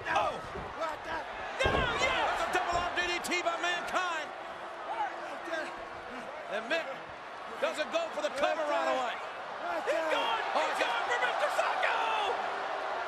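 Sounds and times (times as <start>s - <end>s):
crowd shouting: 0.0s - 13.0s.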